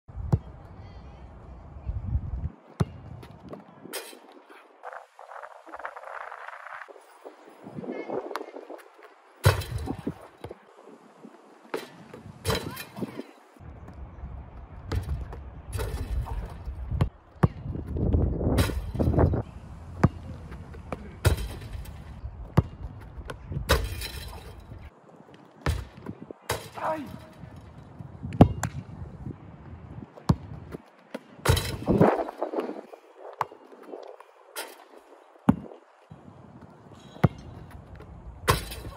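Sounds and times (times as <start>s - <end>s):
ball hitting metal rim: 9.4s - 10.2s, 11.7s - 13.1s, 14.9s - 16.6s, 18.6s - 19.4s, 21.2s - 22.7s, 23.7s - 24.7s, 25.6s - 27.4s, 31.4s - 32.3s, 38.4s - 38.9s
basketball bouncing: 14.9s - 18.0s, 20.0s - 24.4s, 25.6s - 26.7s, 30.3s - 32.0s.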